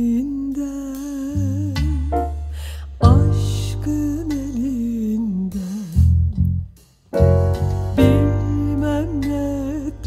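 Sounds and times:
electric bass guitar: 0:00.0 - 0:10.0
woman singing with vibrato: 0:03.0 - 0:05.9, 0:08.2 - 0:10.0.

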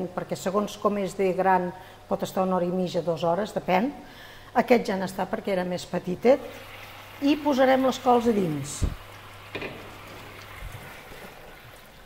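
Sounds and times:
pan simmering with hiss: 0:06.4 - 0:12.0.

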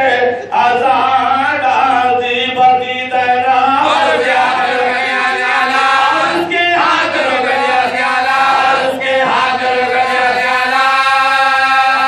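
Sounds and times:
lead reciter chanting: 0:00.0 - 0:12.0
men chanting an elegy: 0:00.0 - 0:12.0.

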